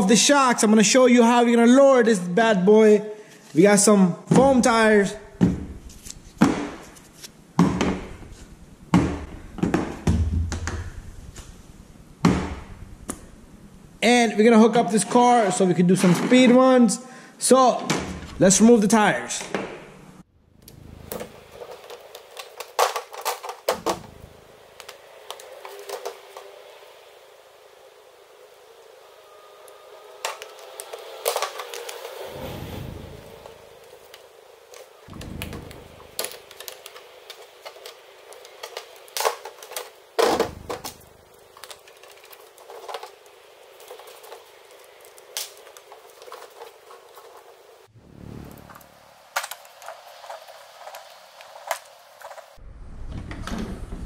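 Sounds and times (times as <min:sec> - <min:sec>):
louder thumps: 0:05.3 - 0:07.0, 0:12.2 - 0:13.2, 0:35.1 - 0:36.6
plastic parts clicking and tapping: 0:21.1 - 0:24.1, 0:24.8 - 0:26.5, 0:30.2 - 0:32.2, 0:33.4 - 0:47.6.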